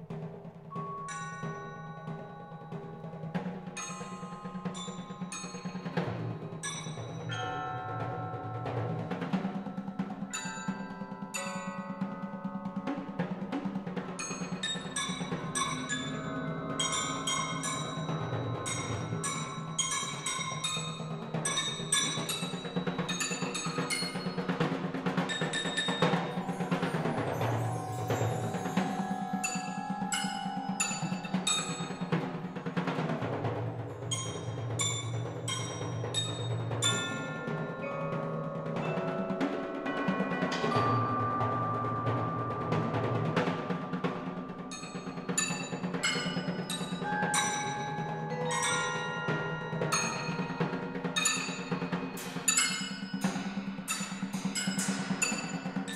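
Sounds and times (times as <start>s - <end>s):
cymbals: 0.0s - 55.9s
roto tom drum strokes: 0.0s - 55.9s
mallet keyboard notes: 0.7s - 55.9s.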